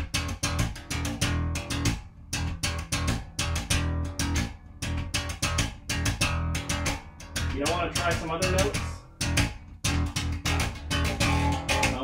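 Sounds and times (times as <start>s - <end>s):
electric bass plucked fingerstyle: 0.0s - 12.0s.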